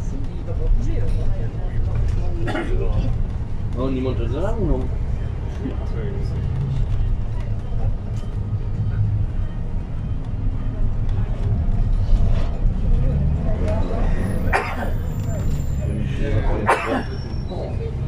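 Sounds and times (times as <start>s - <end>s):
engine and road drone: 0.0s - 18.0s
faint passengers' voices: 0.0s - 18.0s.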